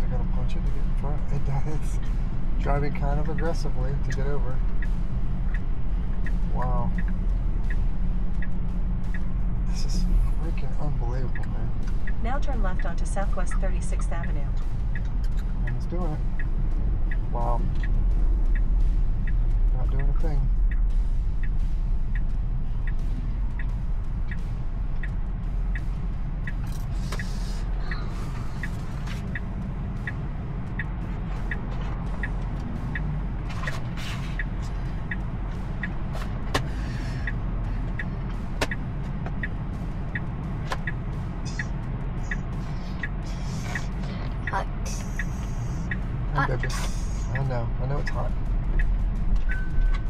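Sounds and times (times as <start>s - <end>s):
road and tyre rumble: 0.0s - 50.0s
turn signal ticking: 0.0s - 50.0s.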